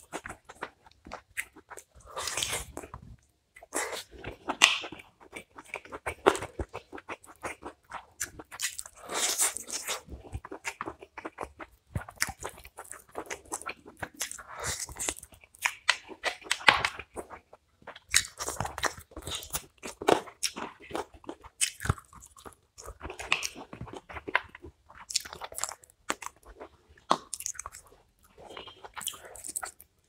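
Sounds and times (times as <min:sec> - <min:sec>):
man chewing and mouth smacks: 0:00.0 - 0:30.0.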